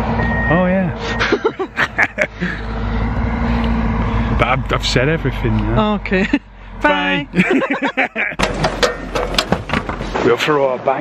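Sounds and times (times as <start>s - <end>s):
man laughing hard: 1.2s - 2.7s, 7.3s - 8.4s.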